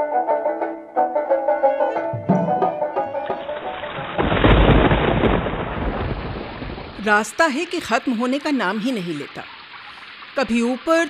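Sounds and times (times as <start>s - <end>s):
thunder rumbling: 3.6s - 7.3s
rain hissing: 4.1s - 11.0s.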